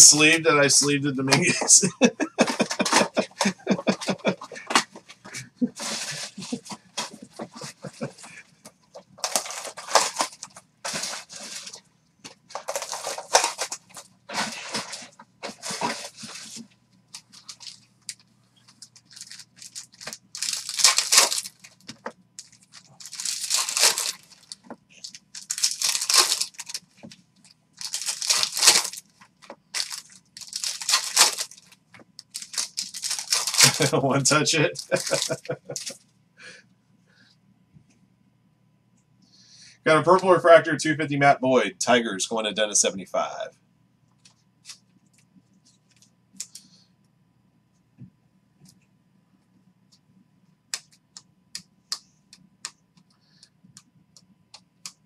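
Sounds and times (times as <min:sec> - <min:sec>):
wrappers crinkling: 0:02.4 - 0:08.2, 0:09.0 - 0:11.8, 0:12.4 - 0:36.0
foil packs tearing: 0:05.8 - 0:07.2, 0:09.2 - 0:11.8, 0:12.5 - 0:16.6, 0:19.0 - 0:26.8, 0:27.8 - 0:29.1, 0:29.8 - 0:31.7, 0:32.3 - 0:36.0.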